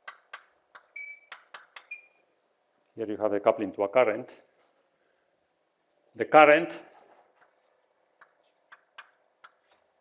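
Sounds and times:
chalk tapping on blackboard: 0.0 - 1.9, 7.4 - 10.0
chalk squeaks: 0.0 - 2.2, 7.4 - 10.0.

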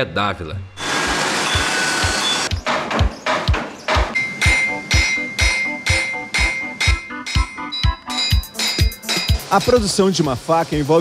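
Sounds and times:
background music: 0.0 - 11.0
hammer striking steel on anvil: 2.7 - 9.8.

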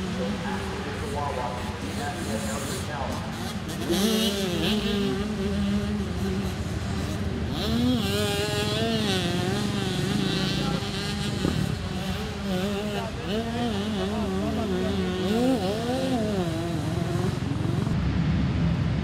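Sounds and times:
motocross bike engines revving: 0.0 - 19.0.

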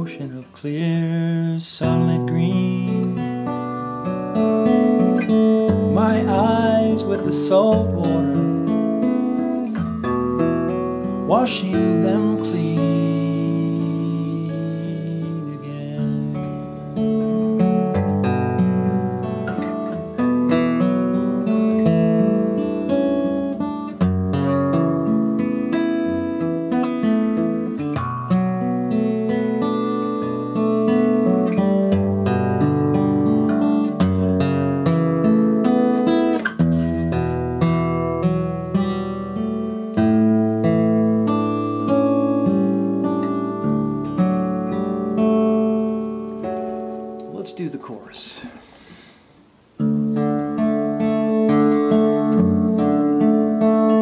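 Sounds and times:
acoustic guitar chords: 0.0 - 54.0.

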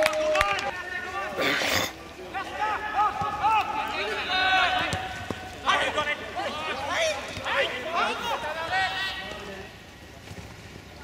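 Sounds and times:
players shouting: 0.0 - 9.8.

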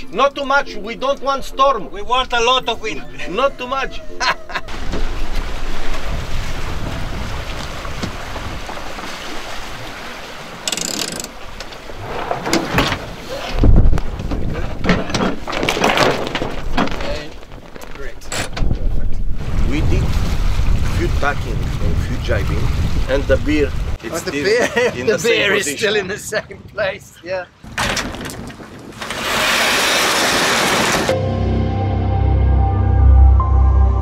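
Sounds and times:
wind buffeting microphone: 4.7 - 10.0, 12.8 - 15.1, 16.6 - 31.0
boat rushing through water: 4.7 - 14.8.

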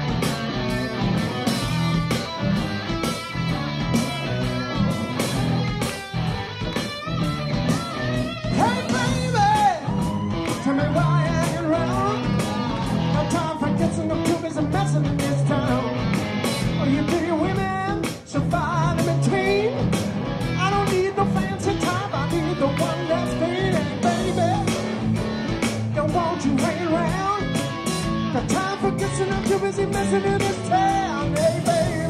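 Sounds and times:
live rock band playing: 0.0 - 32.0
man singing: 8.4 - 16.1, 16.7 - 19.9, 20.6 - 24.9, 25.9 - 27.6, 28.3 - 32.0.

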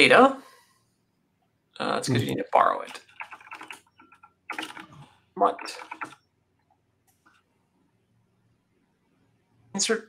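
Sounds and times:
keyboard key clicks: 4.5 - 5.0.

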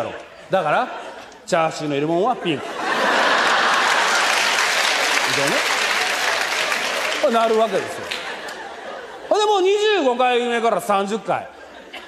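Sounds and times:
audience applauding: 2.9 - 8.8.

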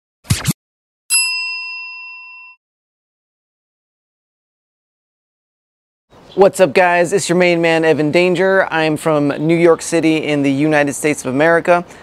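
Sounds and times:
notification bell ding: 1.1 - 2.6.

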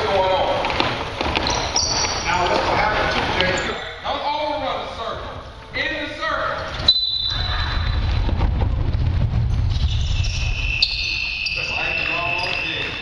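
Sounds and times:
basketballs bouncing on court: 0.0 - 2.8.

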